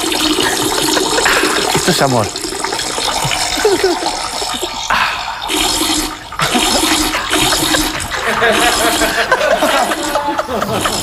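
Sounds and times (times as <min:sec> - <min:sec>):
rushing hissing water: 0:00.0 - 0:11.0.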